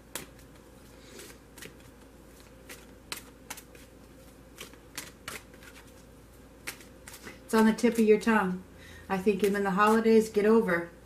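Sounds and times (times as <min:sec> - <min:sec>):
cards shuffled by hand: 0:00.0 - 0:08.1.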